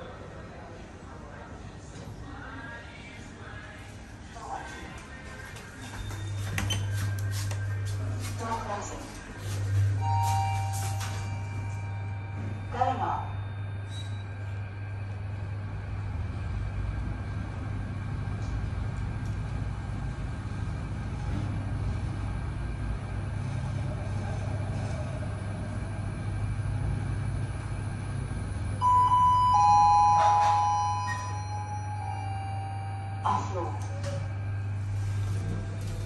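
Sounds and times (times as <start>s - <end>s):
lift humming: 5.0s - 36.0s
two-note electronic chime: 10.0s - 15.2s, 28.8s - 36.0s.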